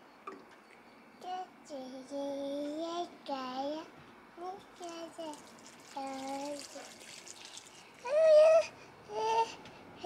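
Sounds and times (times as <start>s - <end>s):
water trickling onto soil: 4.8s - 8.0s
toddler babbling: 8.0s - 9.6s.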